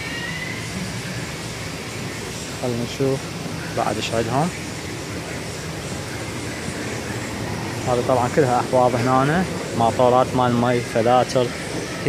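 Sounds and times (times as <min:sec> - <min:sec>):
low mechanical hum with hiss: 0:00.0 - 0:12.0.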